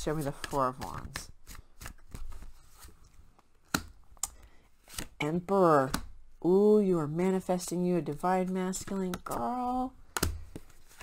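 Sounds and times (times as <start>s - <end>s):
cards being shuffled: 0.0s - 5.2s, 8.7s - 11.0s.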